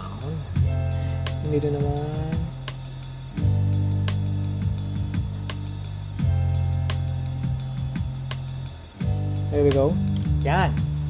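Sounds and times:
held bass notes: 0.0s - 11.0s
instrumental beat with drum kit: 0.0s - 11.0s.

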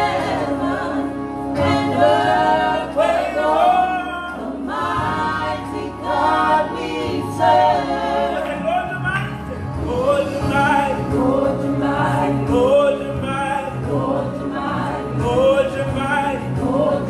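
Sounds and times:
choir singing through microphones: 0.0s - 8.7s, 9.7s - 17.0s.

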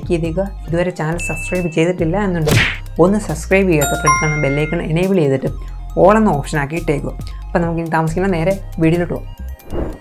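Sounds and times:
bell-like chime: 3.8s - 5.2s.

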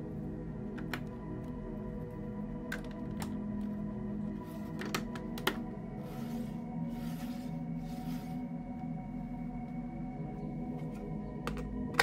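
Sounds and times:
background music with steady tones: 0.0s - 12.0s.

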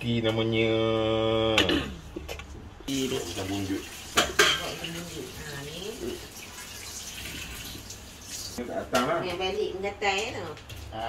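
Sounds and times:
kitchenware clinking: 4.1s - 5.0s.

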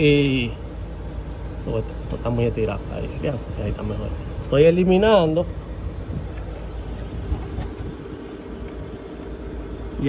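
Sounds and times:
diesel truck engine idling: 0.0s - 10.0s.

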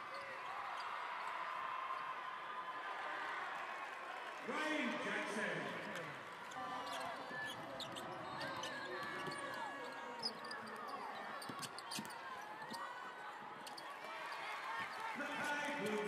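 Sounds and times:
murmur of arena crowd: 0.0s - 16.0s
sneakers squeaking: 6.5s - 16.0s.

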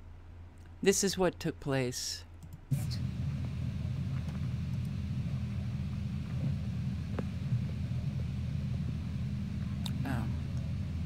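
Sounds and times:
steady low rumble: 2.7s - 11.0s.

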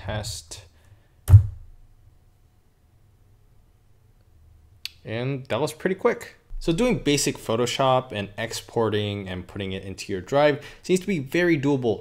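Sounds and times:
loud dull thunk: 1.3s - 1.7s.

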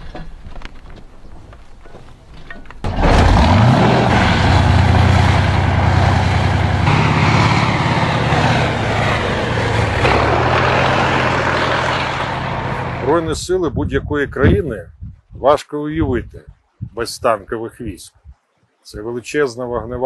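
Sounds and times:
tank tracks on sand: 0.0s - 13.3s
tank diesel engine revving: 2.8s - 13.2s.

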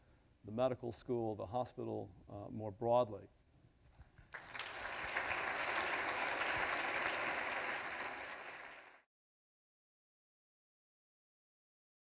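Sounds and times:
audience applauding: 4.3s - 9.1s.

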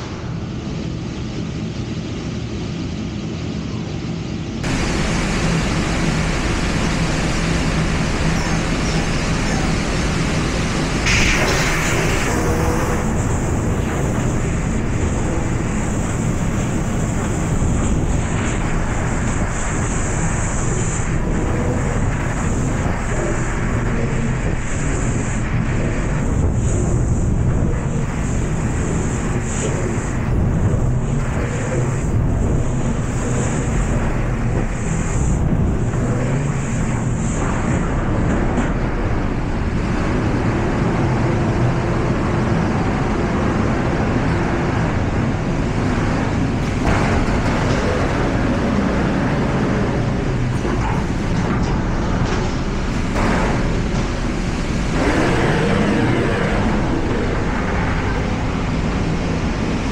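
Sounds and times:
laser cutter rushing noise: 4.6s - 40.7s, 44.9s - 59.9s.

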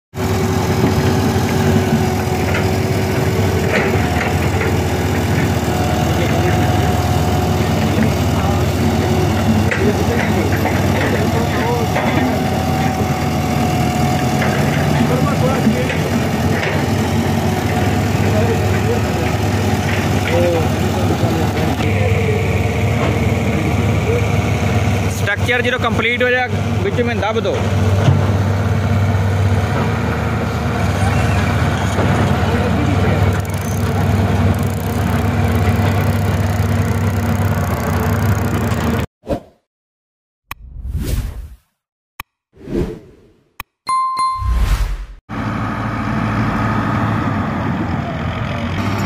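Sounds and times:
diesel engine running steadily: 0.2s - 39.1s, 45.3s - 49.0s.

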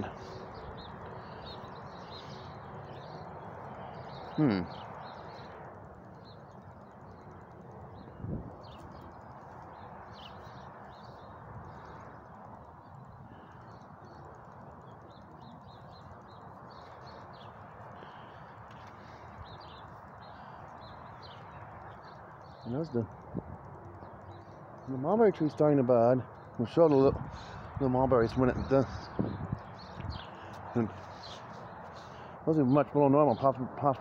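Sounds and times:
low outdoor background rush: 0.0s - 34.0s
small birds chirping: 0.0s - 34.0s.

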